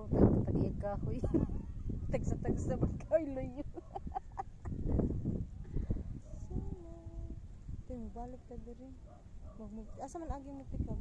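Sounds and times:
women laughing: 0:03.4 - 0:05.1.

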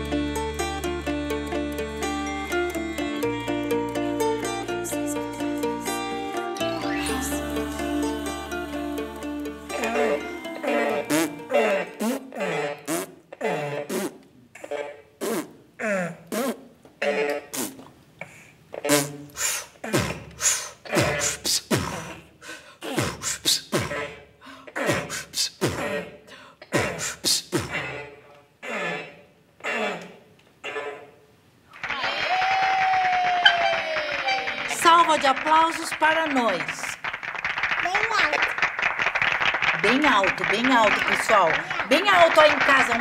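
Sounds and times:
music with falling held note: 0:00.0 - 0:11.5
child making silly mouth noises: 0:09.8 - 0:22.2, 0:37.8 - 0:38.5
child's voice through echo microphone: 0:37.8 - 0:38.5.

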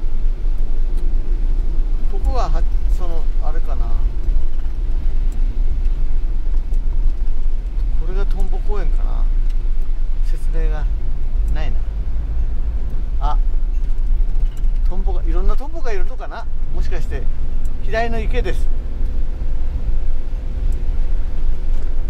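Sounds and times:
van driving on wet road: 0:00.0 - 0:22.0.

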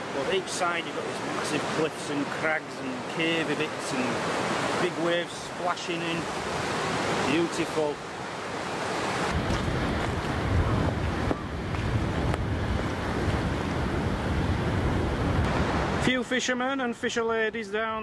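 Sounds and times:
wind buffeting microphone: 0:09.1 - 0:16.0.

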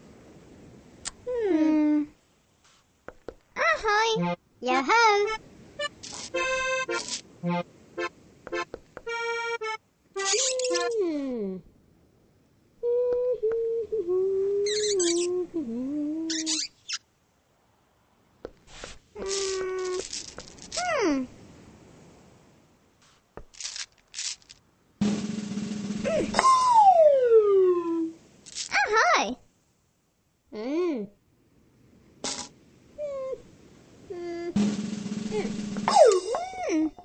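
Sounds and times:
rattly hiss bursts: 0:05.8 - 0:07.2, 0:18.7 - 0:20.8, 0:23.0 - 0:26.3, 0:28.4 - 0:28.8, 0:32.2 - 0:32.5, 0:34.6 - 0:36.6
squeaky cartoon calls: 0:10.2 - 0:11.0, 0:14.6 - 0:15.3, 0:16.3 - 0:17.0, 0:35.9 - 0:37.0
cartoon voice humming: 0:35.2 - 0:37.0.

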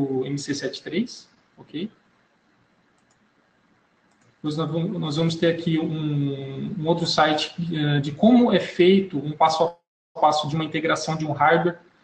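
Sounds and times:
faint mouse clicks: 0:02.8 - 0:04.4.

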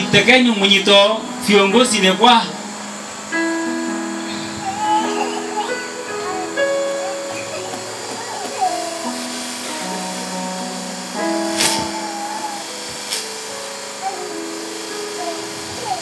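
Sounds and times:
soft keyboard chords: 0:00.0 - 0:16.0.

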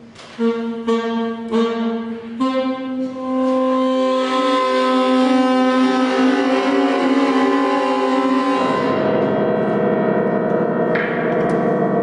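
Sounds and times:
saxophone holding a long note: 0:00.3 - 0:12.0
piano accompaniment: 0:05.7 - 0:12.0.

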